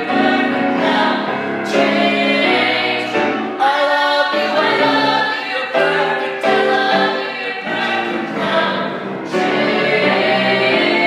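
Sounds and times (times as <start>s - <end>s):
group singing show tune: 0.0s - 11.0s
musical accompaniment: 0.0s - 11.0s.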